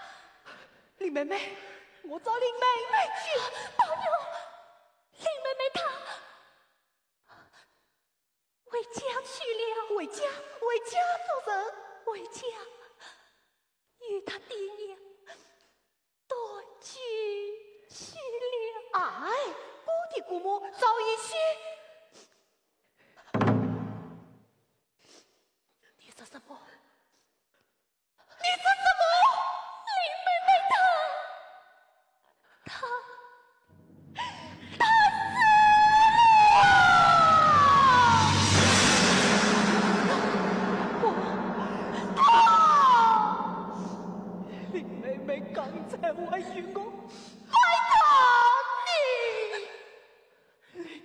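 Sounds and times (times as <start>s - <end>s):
opera singer wailing cry: 34.9s - 38.4s.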